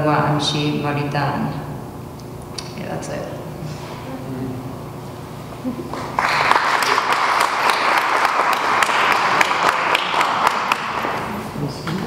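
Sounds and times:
audience applauding: 5.9s - 11.3s.

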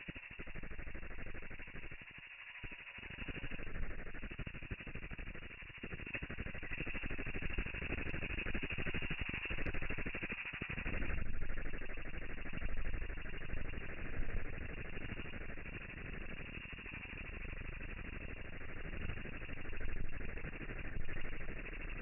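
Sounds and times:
low grainy crackle: 0.0s - 22.0s.

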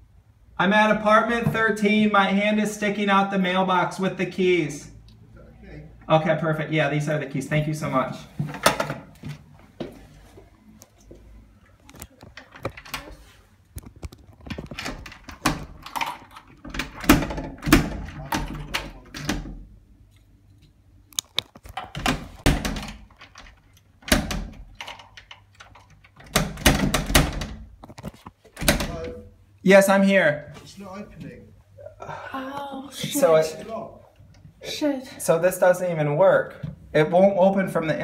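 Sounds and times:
key rattling in door lock: 14.5s - 19.3s, 21.8s - 27.6s.

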